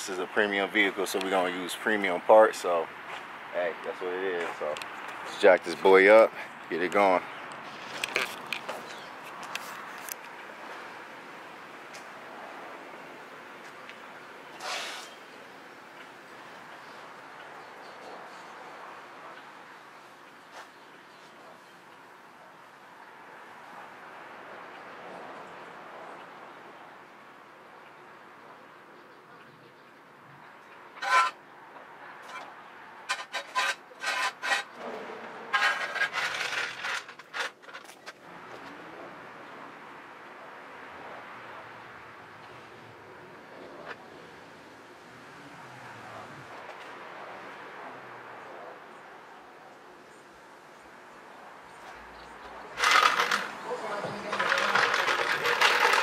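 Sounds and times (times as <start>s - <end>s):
jack handle squeaking strokes: 31.0s - 31.4s, 33.1s - 34.8s, 35.5s - 37.9s, 52.8s - 56.0s.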